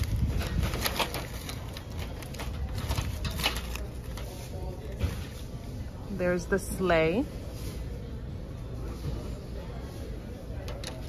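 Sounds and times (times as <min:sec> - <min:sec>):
wooden ornaments clicking and rustling: 0:00.0 - 0:04.2.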